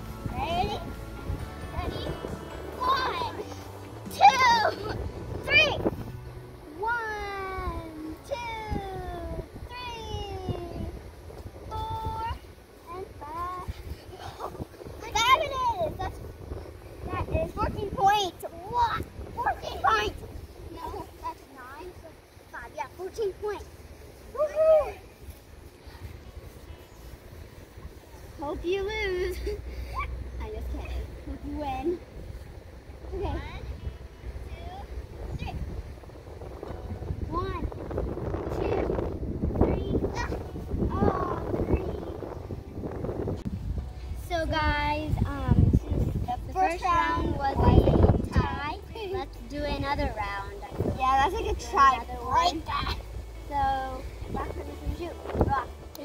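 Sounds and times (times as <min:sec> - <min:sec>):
wind rumble on microphone: 0:00.0 - 0:56.0
girls exclaiming and calling: 0:00.2 - 0:42.7, 0:44.1 - 0:56.0
children crying and squealing: 0:02.0 - 0:05.9.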